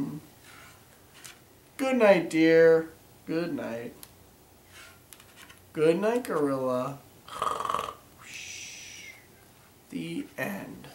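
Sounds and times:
man mock snoring: 7.3 - 8.0.

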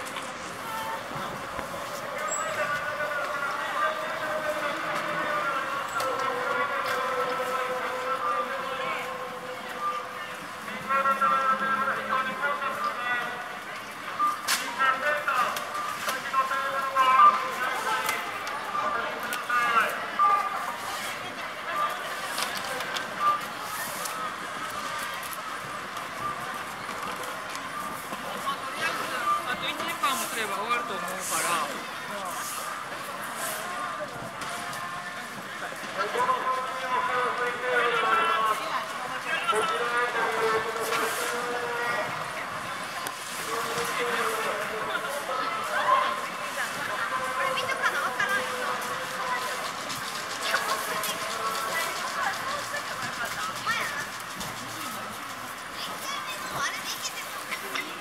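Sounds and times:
crowd talking: 0.0 - 58.0.

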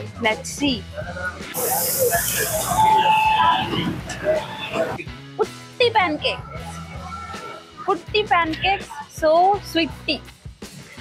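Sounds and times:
voices chattering: 1.1 - 5.1
brief hiss: 1.6 - 2.9.

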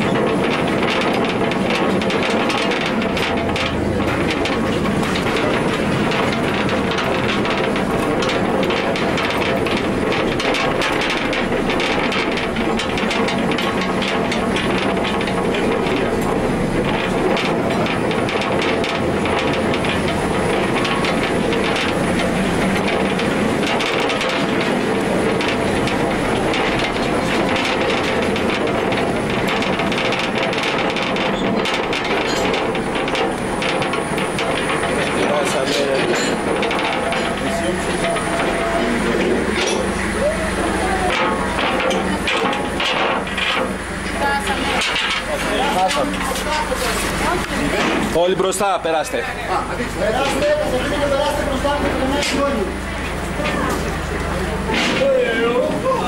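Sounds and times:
mine train rumbling on rails: 0.0 - 56.0.

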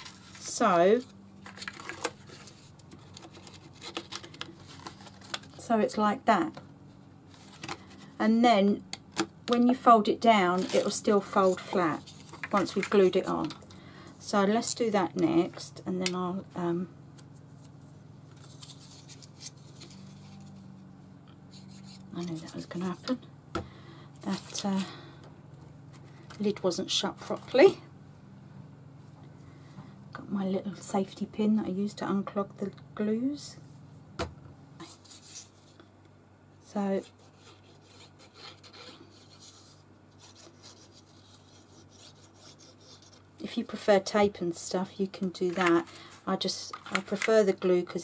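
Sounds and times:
paper rustling: 0.0 - 5.6, 7.3 - 8.2, 10.4 - 13.6, 17.6 - 20.7, 45.4 - 47.4
low steady hum: 0.0 - 48.0.

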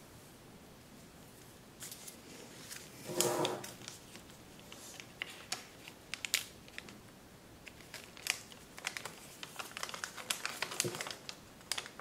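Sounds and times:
paper crinkling and crackling: 1.8 - 7.0, 7.6 - 12.0.

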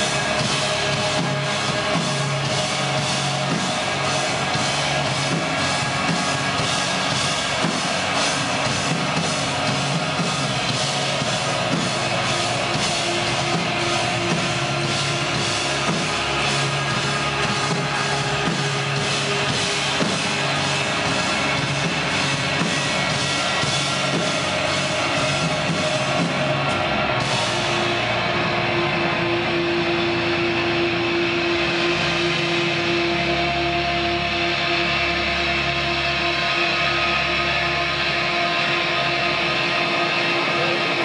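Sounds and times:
deep bass: 0.0 - 41.0
drums: 0.0 - 41.0
post-rock band playing live: 0.0 - 41.0.

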